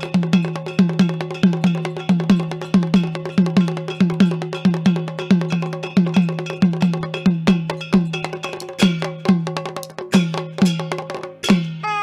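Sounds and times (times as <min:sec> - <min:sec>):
folk percussion playing: 0:00.0 - 0:12.0.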